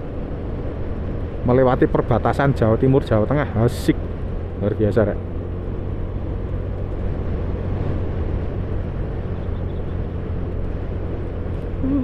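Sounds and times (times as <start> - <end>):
road rumble: 0.0 - 12.0
wind: 0.0 - 12.0.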